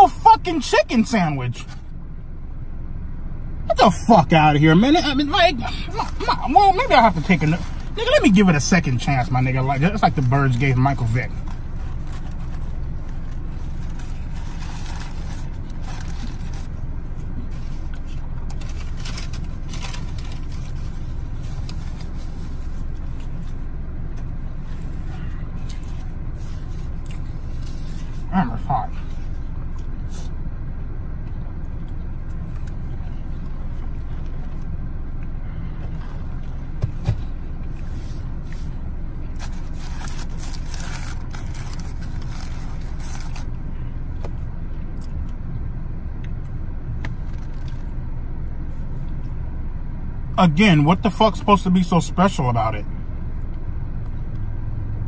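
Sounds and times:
car cabin hum: 0.0 - 55.0
short voiced sound: 3.7 - 8.3
paper wrapper crinkling: 11.8 - 16.7, 18.5 - 22.0, 39.4 - 43.5
chewing: 26.8 - 28.0.

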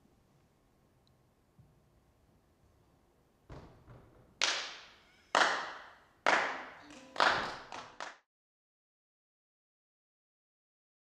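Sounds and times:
hand claps echoing: 4.3 - 8.2.

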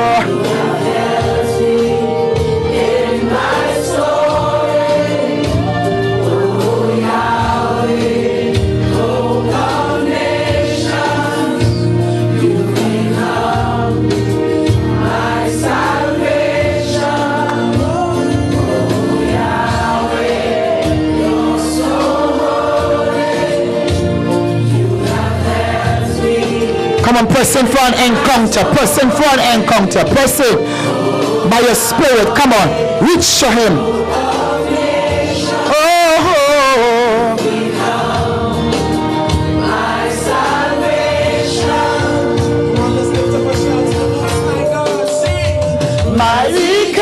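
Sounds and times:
choir singing gospel song: 0.0 - 47.0
instrumental backing with bass line: 0.0 - 47.0.

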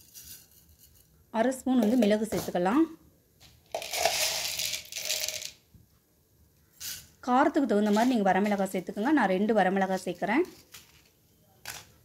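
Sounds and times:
peppercorns rattling in a pan: 0.0 - 1.1, 3.7 - 5.6.

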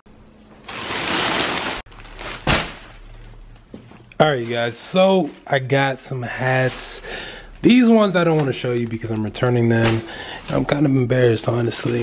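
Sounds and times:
plastic bags rustling: 0.5 - 12.0
sharp plastic crackle: 0.6 - 3.4.

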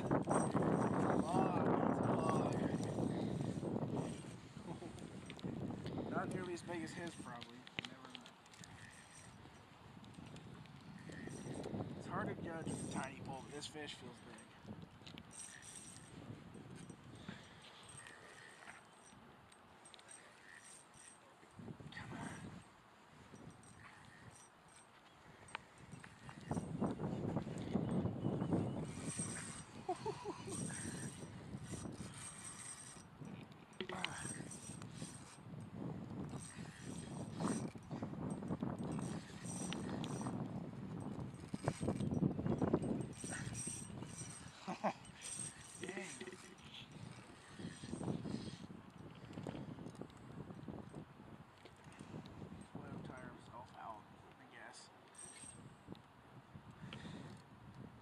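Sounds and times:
fishing reel clicking: 0.0 - 12.0, 12.6 - 21.2, 28.8 - 40.4, 41.0 - 50.2.

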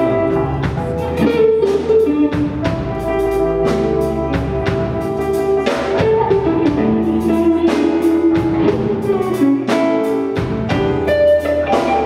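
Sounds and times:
bass: 0.0 - 12.0
drums: 0.0 - 12.0
electric guitar lead: 0.0 - 12.0.

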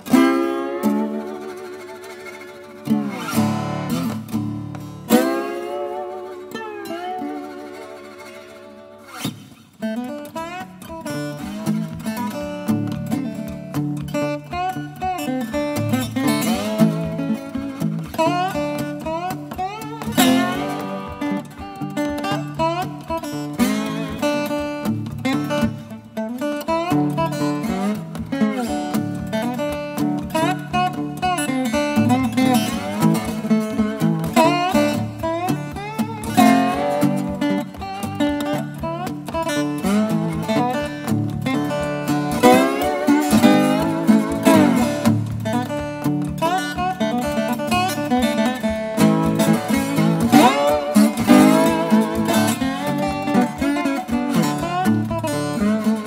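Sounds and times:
slide lap steel guitar blues: 0.0 - 56.0.

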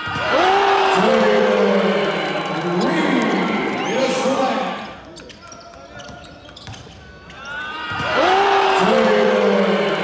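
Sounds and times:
players and spectators talking: 0.0 - 10.0.

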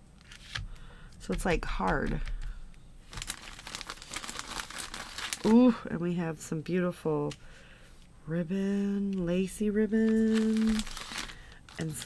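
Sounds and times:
plastic packaging crinkling: 3.0 - 5.9, 9.9 - 12.0.

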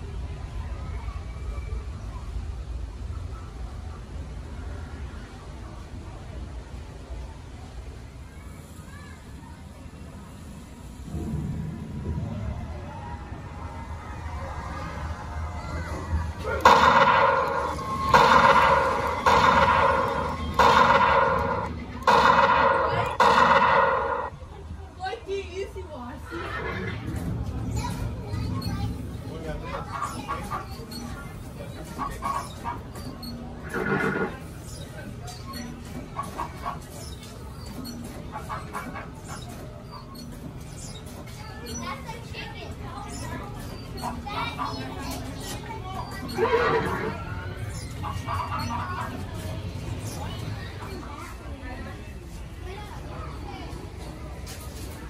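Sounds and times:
faint wavering sounds: 16.3 - 24.5
toy rifle gunshot effect: 16.6 - 24.3
horse whinnying: 26.3 - 27.1, 33.6 - 34.4, 46.4 - 47.2.

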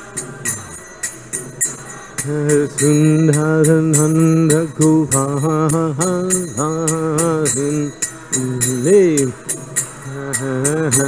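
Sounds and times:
small hand cymbals struck: 0.0 - 11.0
man singing a devotional chant: 1.7 - 11.0.

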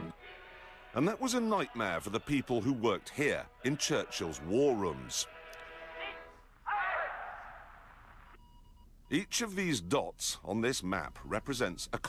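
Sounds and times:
faint steady beep-like tones: 8.3 - 9.4, 11.0 - 12.0.

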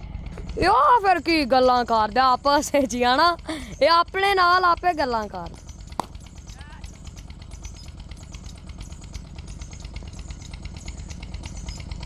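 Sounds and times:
engine chugging: 0.0 - 12.0.

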